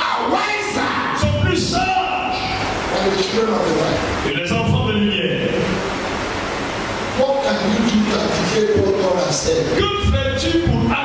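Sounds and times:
man speaking over loudspeakers: 0.0s - 5.8s, 7.2s - 11.0s
man's voice: 0.0s - 5.8s, 7.2s - 11.0s
steady rushing hiss: 0.0s - 11.0s.

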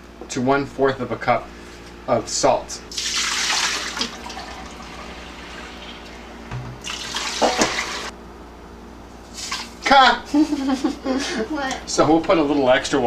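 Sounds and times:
liquid pouring into a metal pot: 2.9s - 6.2s, 6.8s - 8.1s.

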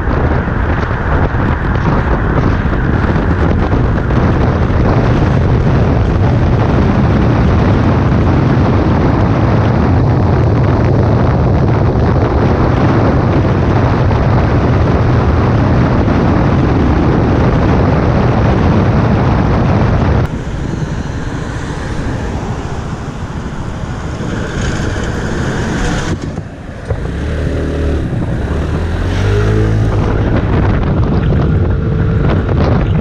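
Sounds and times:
road noise: 0.0s - 33.0s
wind noise on microphone: 0.0s - 33.0s
scooter engine: 20.2s - 33.0s.

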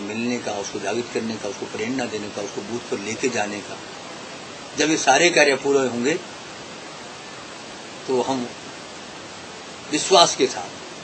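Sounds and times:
man speaking: 0.0s - 3.8s, 4.8s - 6.2s, 8.1s - 8.6s, 9.9s - 10.8s
recording hiss: 0.0s - 11.0s.

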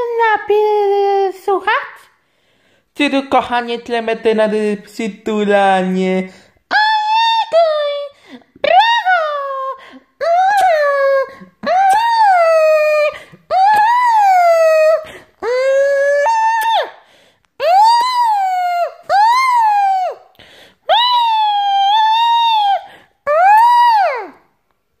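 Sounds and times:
breaths: 2.1s - 3.0s, 8.2s - 8.6s, 13.2s - 13.5s, 17.0s - 17.6s, 20.3s - 20.9s
high-pitched voice wailing: 6.7s - 17.0s, 17.6s - 20.2s, 20.9s - 24.5s.

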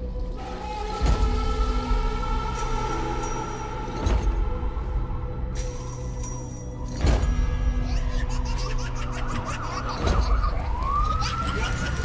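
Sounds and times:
police sirens wailing: 9.3s - 12.0s.

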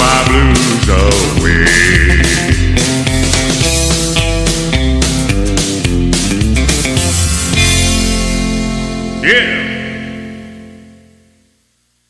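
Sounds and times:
acoustic guitar chord ringing: 6.6s - 11.7s.

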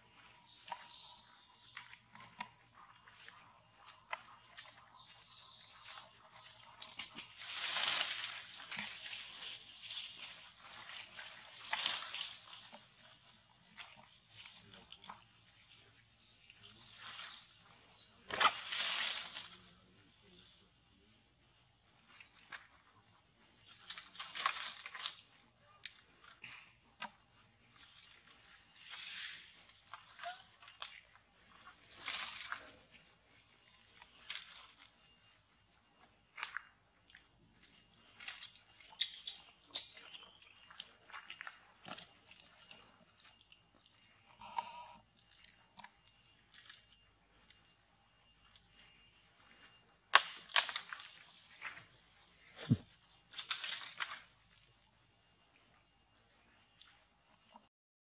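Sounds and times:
leaves and twigs rustling: 0.0s - 21.1s, 21.8s - 43.4s, 45.2s - 57.7s
twigs snapping: 50.1s - 51.8s.

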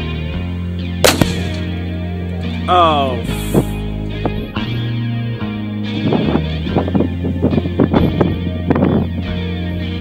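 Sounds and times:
rock music with electric guitar: 0.0s - 10.0s
rifle shot: 1.0s - 1.9s.

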